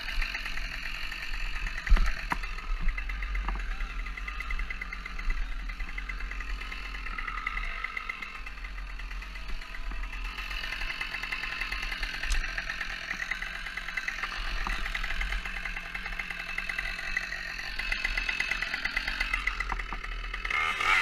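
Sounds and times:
chainsaw idling: 0.0s - 21.0s.

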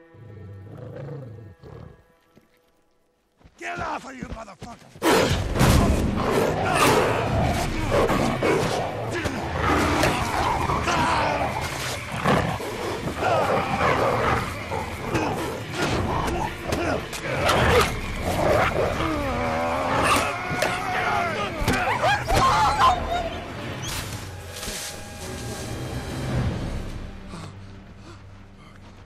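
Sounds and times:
wolf growling: 0.2s - 2.0s, 6.1s - 23.2s
film score drone: 5.4s - 29.0s.

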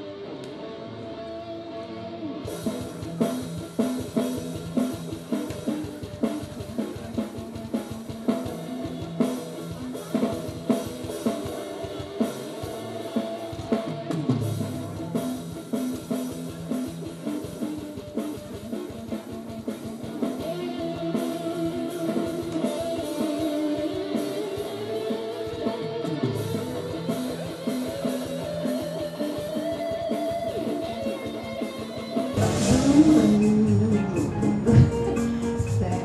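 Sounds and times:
electric guitar rock lines: 0.0s - 36.0s
drum beat: 2.6s - 24.5s, 26.2s - 36.0s
electronic keyboard music: 32.4s - 36.0s.

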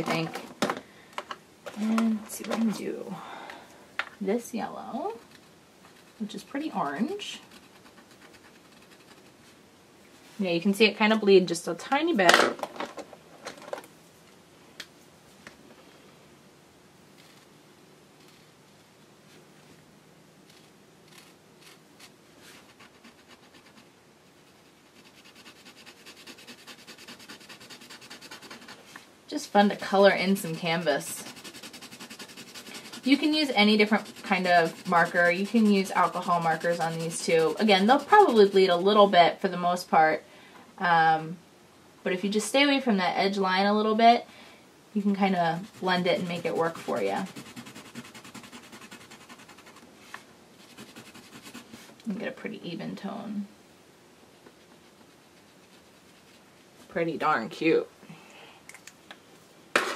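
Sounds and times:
marker scratching: 7.4s - 9.4s, 24.6s - 28.8s, 29.8s - 38.8s, 45.0s - 49.8s, 50.6s - 51.8s
marker tip scratching: 30.5s - 38.6s.

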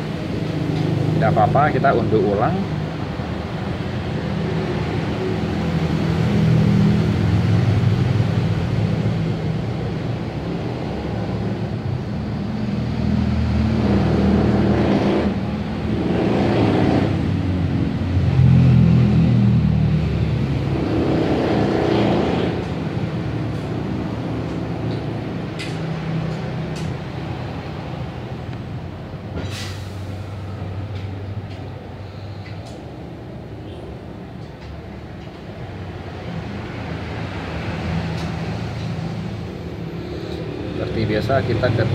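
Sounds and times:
vehicles passing by: 0.0s - 41.9s.

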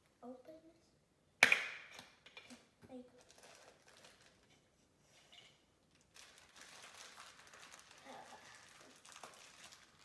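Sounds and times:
plastic packaging crinkling: 3.2s - 4.6s, 5.9s - 10.0s.

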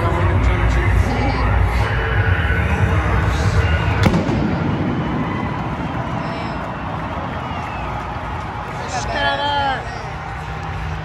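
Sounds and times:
pyrotechnic bang echoing: 4.0s - 7.1s.

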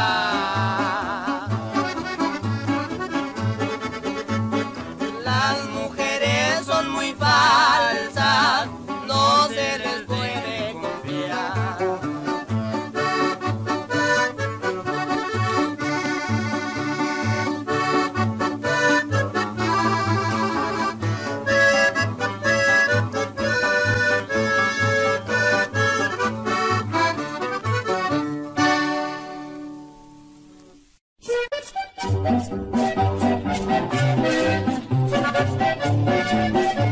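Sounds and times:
button accordion playing: 0.0s - 29.6s, 31.2s - 36.9s.

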